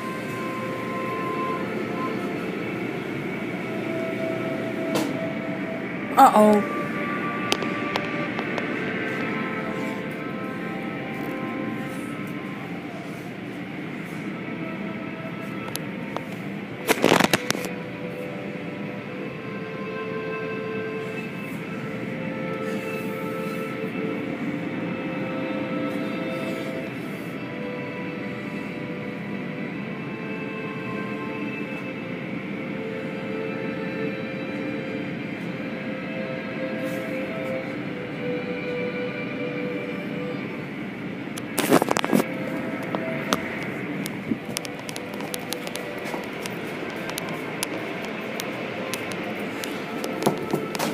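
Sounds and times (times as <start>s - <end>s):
car wash machinery running: 0.0s - 50.9s
cloth strips dragging over car: 9.0s - 14.4s, 21.0s - 24.5s.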